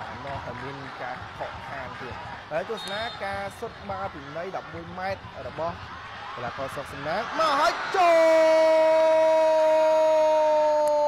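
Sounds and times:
sports commentator talking: 0.0s - 10.7s.

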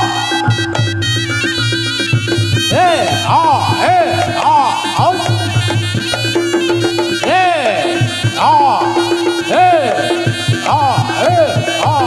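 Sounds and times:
drums and gongs beat: 0.0s - 12.0s
shawm playing high melody: 0.0s - 12.0s.

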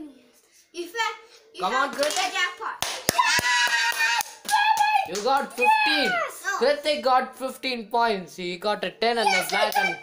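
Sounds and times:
child crying high-pitched: 3.2s - 6.4s.

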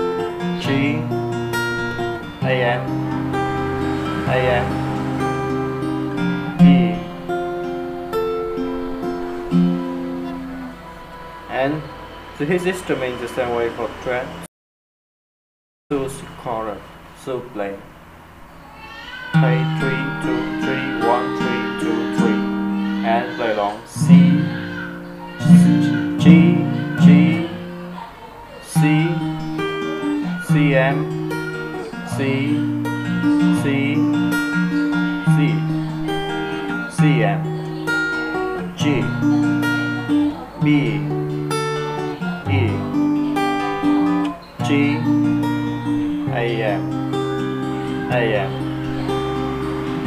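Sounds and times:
person speaking: 0.0s - 5.2s, 11.5s - 14.4s, 19.3s - 46.9s, 47.8s - 50.0s
fingerpicked acoustic guitar: 0.0s - 14.2s, 19.3s - 50.0s.

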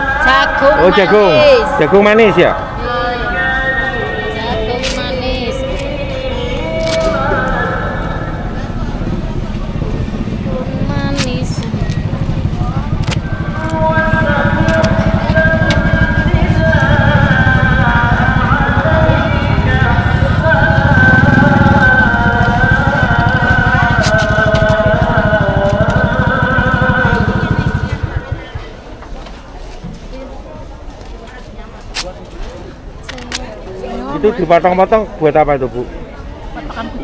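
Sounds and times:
motorcycle engine running: 4.1s - 29.4s.

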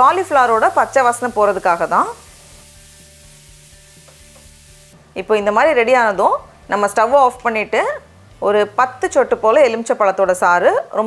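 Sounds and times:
food sizzling in a pan: 0.0s - 5.1s.

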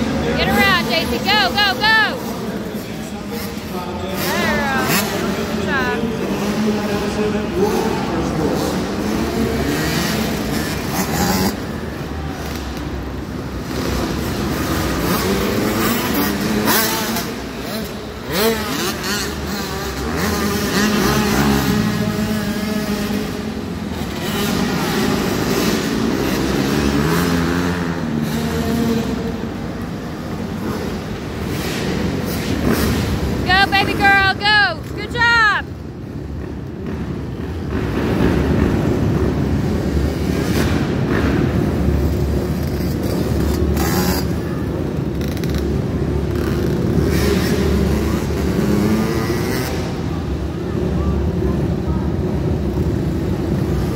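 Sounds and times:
motocross bikes revving: 0.0s - 53.9s.

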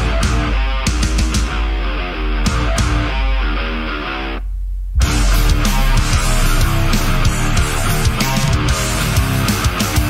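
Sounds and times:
rock band playing: 0.0s - 4.4s, 5.0s - 10.0s
electric guitar riff: 0.0s - 10.0s
low bass note: 4.4s - 9.2s.

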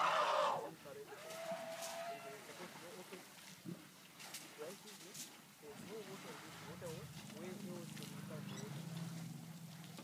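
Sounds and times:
elephant trumpeting: 0.0s - 2.4s.

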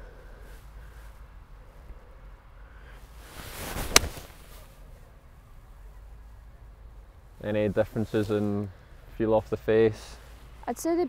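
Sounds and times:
golf club swing whoosh: 3.2s - 4.7s
club striking golf ball: 3.9s - 4.2s.

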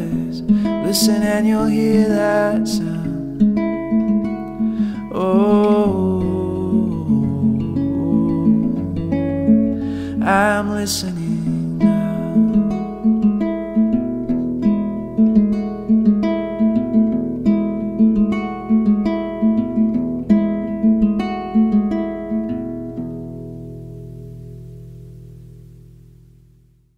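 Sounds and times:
acoustic guitar picking: 0.0s - 26.7s
guitar chord ringing: 0.0s - 26.9s.

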